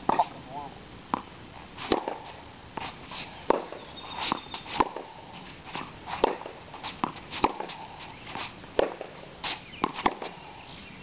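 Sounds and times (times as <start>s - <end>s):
tennis ball hit and bouncing: 1.9s - 2.9s, 3.5s - 5.1s, 5.7s - 7.9s, 8.8s - 9.2s, 9.8s - 10.4s.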